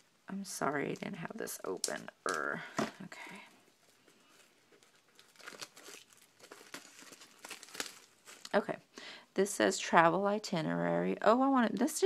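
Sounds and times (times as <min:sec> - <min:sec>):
plastic wrapper crinkling: 0:00.4 - 0:08.6.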